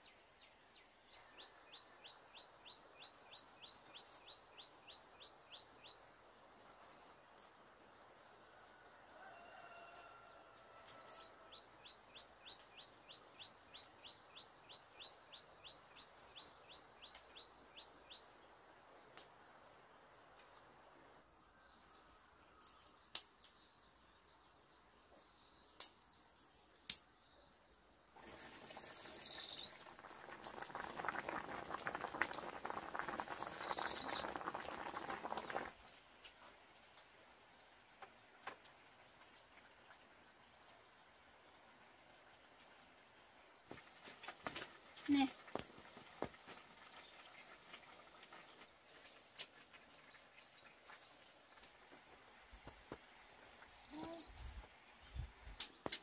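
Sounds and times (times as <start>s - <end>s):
birds chirping: 28.2s - 35.7s.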